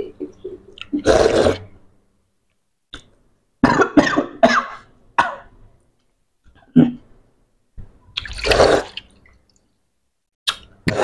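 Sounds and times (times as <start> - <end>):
person coughing: 3.6 - 5.5.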